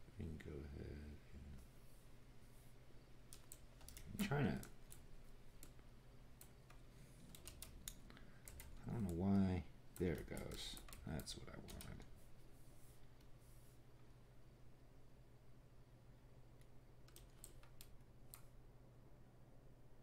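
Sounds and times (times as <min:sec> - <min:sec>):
low electrical hum: 0:00.0 - 0:20.0
keyboard and mouse clicks: 0:03.3 - 0:05.8, 0:06.4 - 0:12.1, 0:16.6 - 0:18.5.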